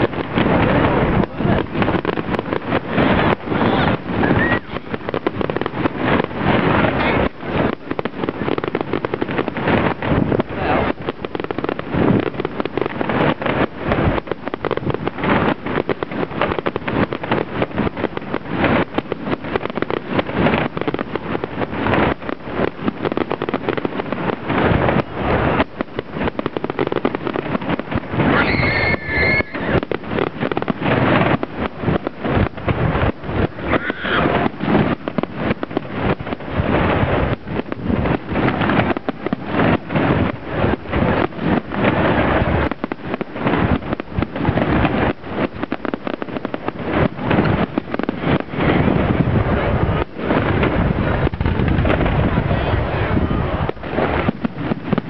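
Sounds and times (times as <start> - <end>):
fireworks bangs and crackles: 0.0 - 55.0
firework whistle: 2.9 - 6.2, 27.9 - 30.6, 32.5 - 34.9.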